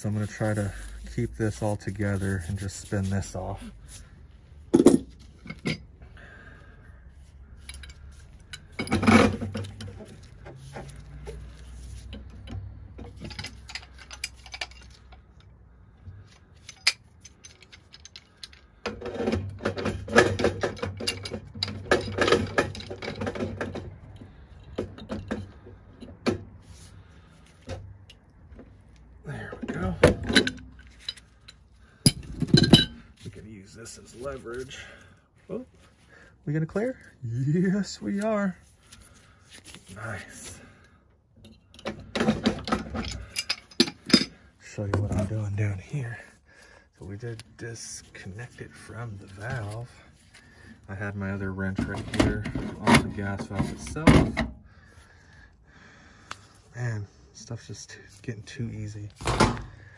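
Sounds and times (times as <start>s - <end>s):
rapid metal clinks and rattles: 7.6s - 15.5s, 16.5s - 25.6s, 41.4s - 44.4s
pipe wrench clanking on metal pipe: 12.1s - 15.4s, 16.6s - 26.5s, 29.5s - 33.1s, 41.4s - 44.4s.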